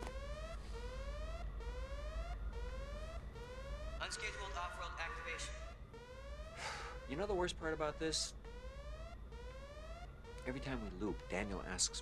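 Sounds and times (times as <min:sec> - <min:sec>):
electronic alarm whooping: 0:00.2 - 0:12.0.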